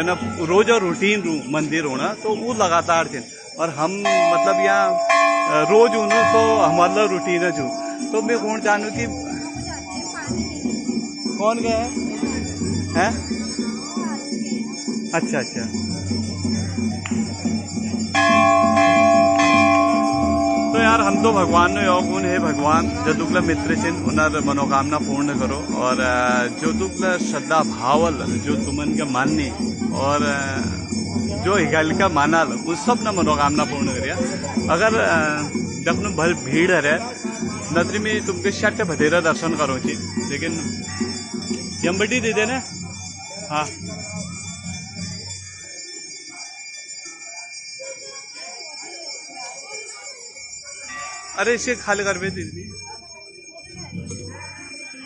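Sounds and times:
faint crowd voices: 0.0s - 55.0s
large brass bell ringing: 3.9s - 15.0s, 15.6s - 46.2s.

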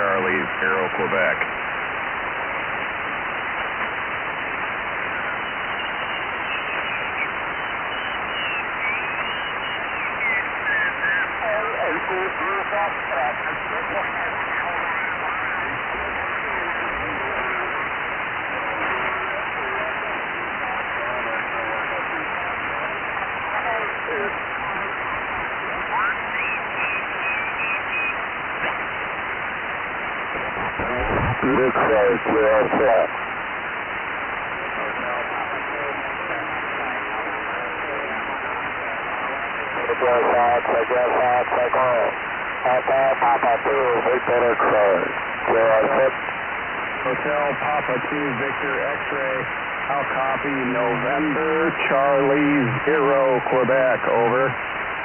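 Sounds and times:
receiver hiss: 0.0s - 55.0s
faint garbled voices: 5.1s - 29.0s, 30.2s - 33.2s, 34.1s - 46.2s, 47.0s - 54.6s.

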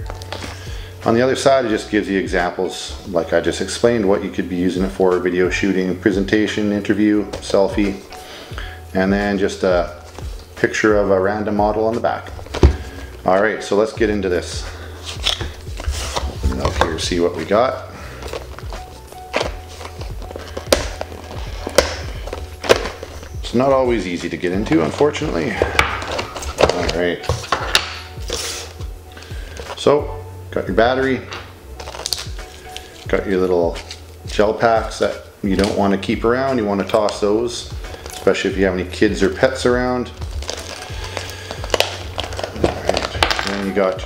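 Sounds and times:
background music: 0.0s - 44.0s
cardboard and plastic rustling: 12.0s - 13.2s, 14.5s - 29.9s, 31.2s - 34.0s, 37.8s - 38.5s, 39.2s - 44.0s.

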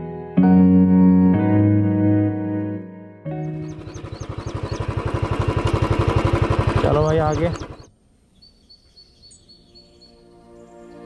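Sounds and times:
birds chirping faintly: 3.3s - 5.8s, 6.4s - 11.0s
motorcycle engine idling: 3.4s - 7.9s.

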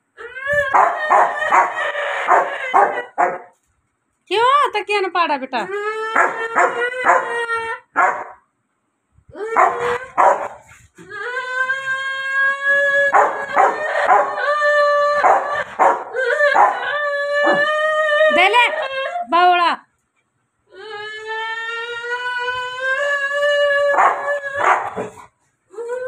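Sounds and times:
dog howling and yelping: 0.2s - 3.5s, 6.1s - 8.1s, 9.4s - 19.2s, 23.4s - 25.2s.

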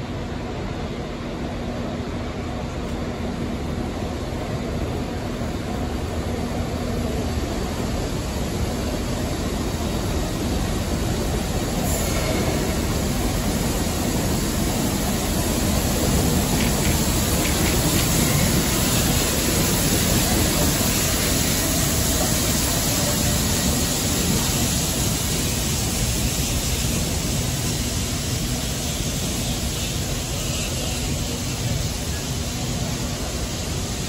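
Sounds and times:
steam train running slowly: 0.0s - 34.0s
train wheels and running gear: 0.8s - 34.0s.

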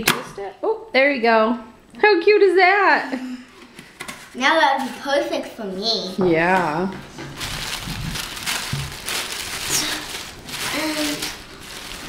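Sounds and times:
tissue paper rustling and crinkling: 7.3s - 12.0s.

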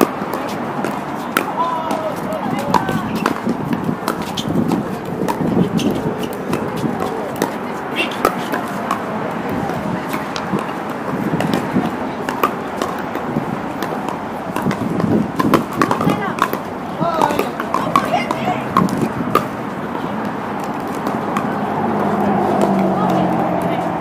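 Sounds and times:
paddles hitting balls: 0.0s - 23.9s.

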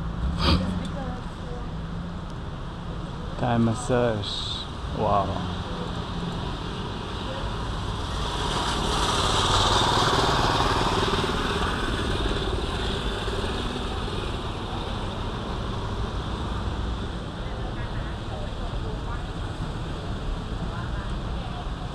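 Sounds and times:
street traffic noise: 0.0s - 21.9s.

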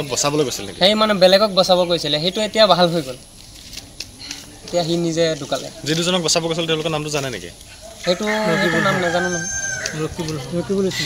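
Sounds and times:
rooster crowing: 7.9s - 11.0s.

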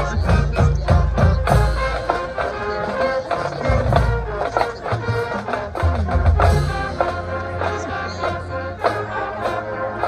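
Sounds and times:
brass chords: 0.0s - 10.0s.

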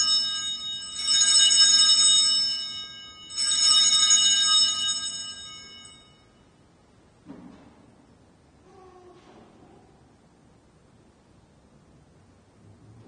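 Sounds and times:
altar bells ringing: 0.0s - 6.6s.

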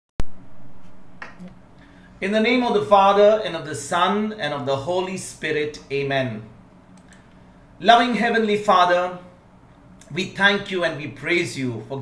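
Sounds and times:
sharp click: 6.9s - 7.2s.

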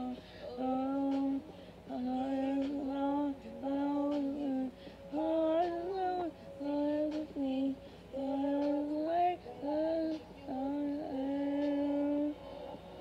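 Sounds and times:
woman singing a pop ballad: 0.0s - 12.4s.

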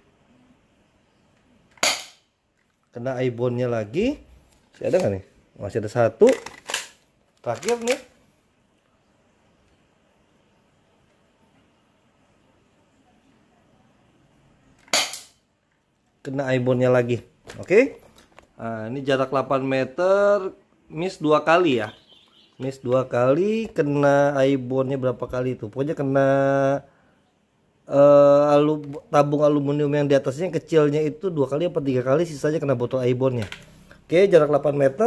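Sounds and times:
airsoft gun shot: 1.8s - 2.2s, 14.9s - 15.4s.

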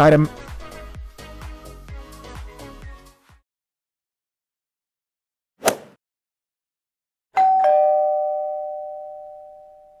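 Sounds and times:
two-note ding-dong chime: 7.4s - 10.0s.

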